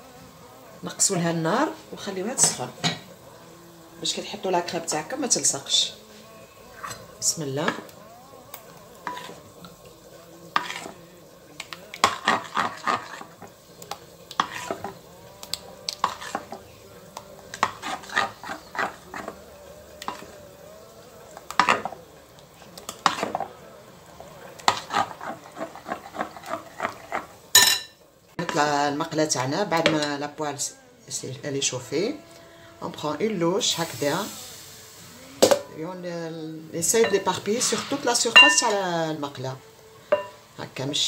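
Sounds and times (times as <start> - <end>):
metal ladle clinking on glass bowl: 27.6 - 28.0, 38.4 - 38.8, 40.1 - 40.4.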